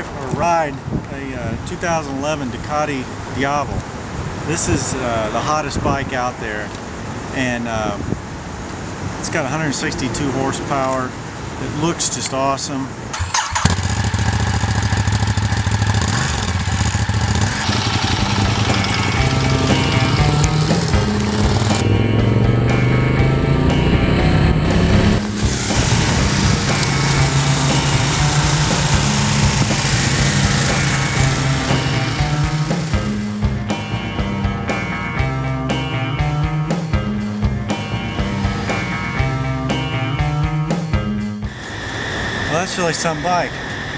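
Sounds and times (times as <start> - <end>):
motorcycle engine revving: 13.1 - 41.7
music: 17.5 - 43.4.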